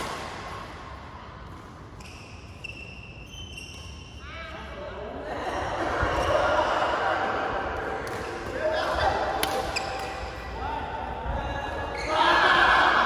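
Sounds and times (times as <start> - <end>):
shoes squeaking on floor: 1.9 - 4.4
players' voices: 4.2 - 13.0
rackets striking shuttlecocks: 9.3 - 10.4.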